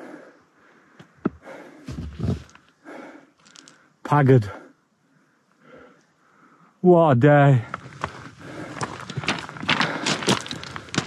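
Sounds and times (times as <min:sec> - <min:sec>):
hard breathing: 0:00.0 - 0:06.8, 0:07.7 - 0:11.0
footsteps crunching on scree: 0:01.2 - 0:02.7, 0:07.6 - 0:11.0.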